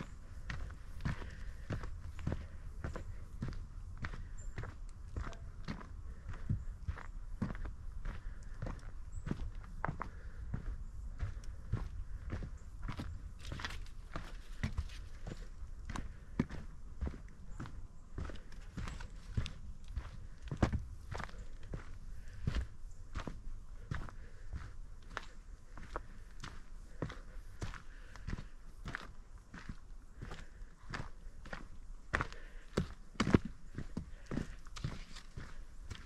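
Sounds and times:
footsteps on dirt trail: 0:00.0 - 0:36.0.

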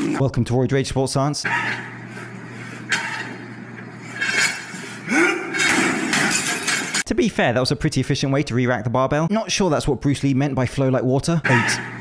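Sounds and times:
gym weights crashing and clanging: 0:04.2 - 0:07.0.

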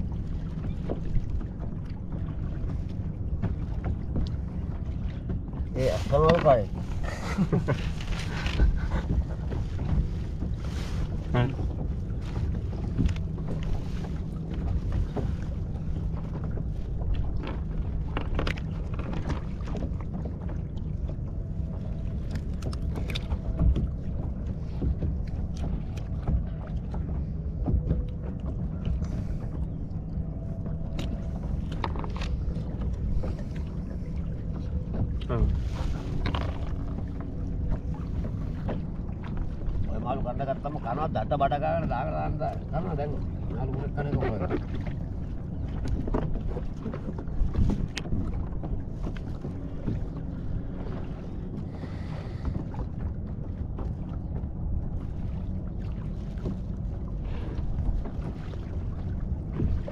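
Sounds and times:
choppy water around boat: 0:00.0 - 0:59.9
wind rumble on microphone: 0:00.0 - 0:59.9.

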